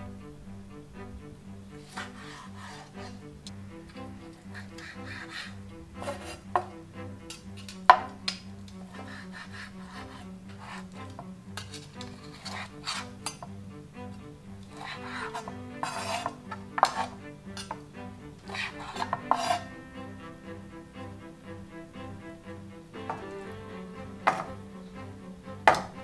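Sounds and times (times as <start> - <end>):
soft background music: 0.0 - 26.0
knife slicing steak: 14.8 - 17.8
knife knocking on cutting board: 25.7 - 25.9.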